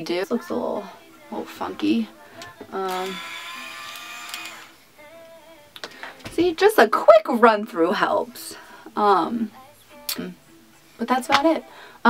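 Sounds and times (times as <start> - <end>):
hair styler motor whirring: 2.8 - 4.8.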